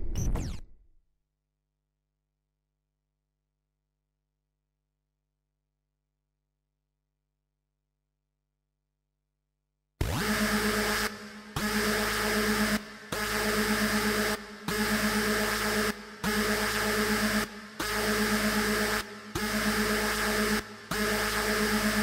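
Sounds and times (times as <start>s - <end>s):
harsh buzzing synth drone: 10.0s - 22.0s.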